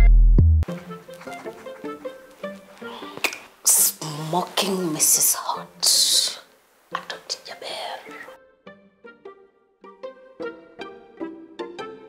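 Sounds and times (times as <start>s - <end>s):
person whispering: 2.9s - 8.3s.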